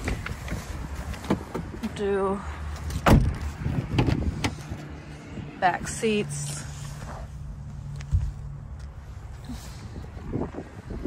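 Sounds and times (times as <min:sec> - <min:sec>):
wind rumble: 0:02.5 - 0:11.0.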